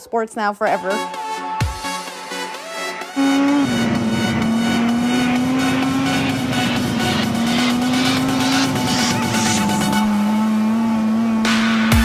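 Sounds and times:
electronic music: 0:00.7 - 0:12.0
snowmobile engine running: 0:03.2 - 0:12.0.

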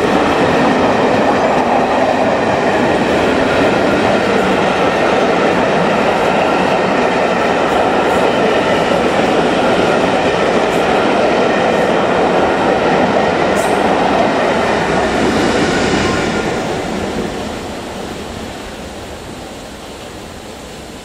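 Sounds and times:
train wheels on rails: 0:00.0 - 0:21.0.

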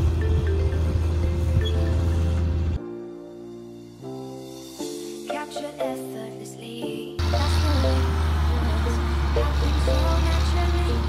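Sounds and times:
tractor diesel engine running: 0:00.0 - 0:02.8, 0:07.2 - 0:11.0
music: 0:00.0 - 0:11.0.

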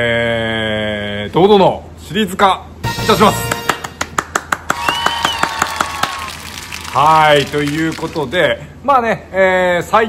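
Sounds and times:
man clapping hands rapidly: 0:03.5 - 0:08.2.

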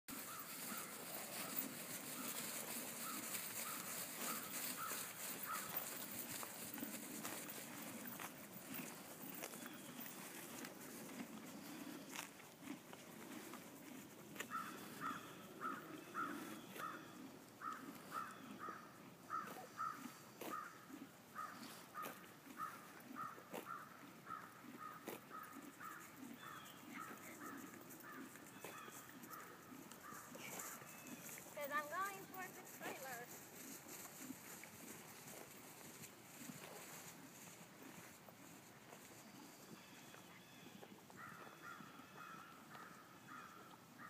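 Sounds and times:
bird calling: 0:00.2 - 0:06.0, 0:14.5 - 0:20.8, 0:21.4 - 0:31.4.

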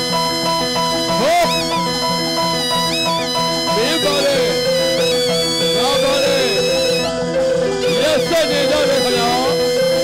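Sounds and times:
traditional fight music: 0:00.0 - 0:10.0.

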